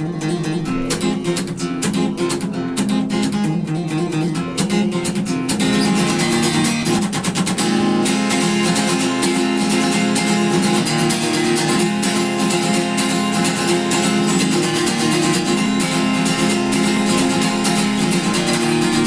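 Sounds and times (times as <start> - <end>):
acoustic guitar picked notes: 0.0 - 19.0.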